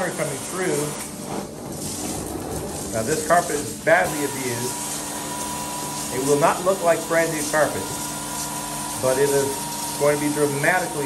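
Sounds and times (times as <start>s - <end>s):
carpet extraction suction hiss: 2.8s - 11.0s.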